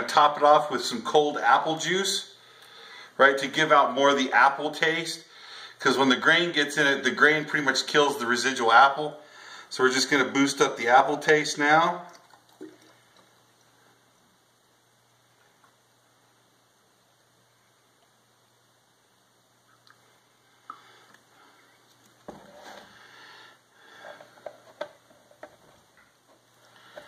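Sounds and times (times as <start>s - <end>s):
juice pouring into glass jug: 12.0s - 13.6s.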